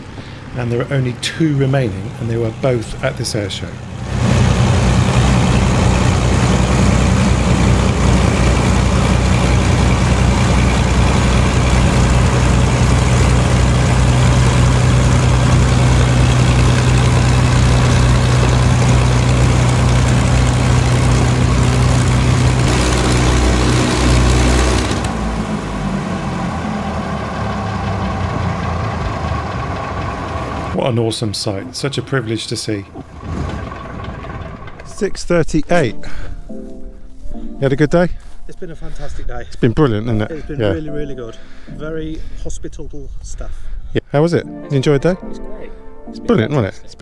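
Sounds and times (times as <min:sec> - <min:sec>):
heavy engine running: 0:00.0 - 0:35.3
higher steady tones: 0:01.9 - 0:37.7.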